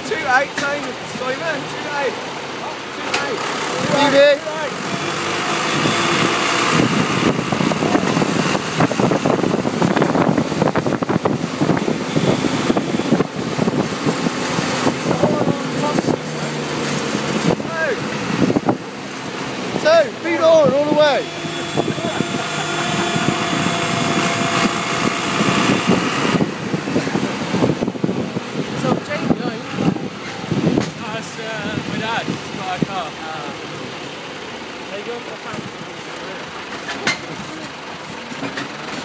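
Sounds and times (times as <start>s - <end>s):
voices: 0.0s - 9.4s, 14.9s - 27.4s, 28.6s - 38.7s
tractor engine running: 0.0s - 39.0s
tyre and road noise: 0.0s - 39.0s.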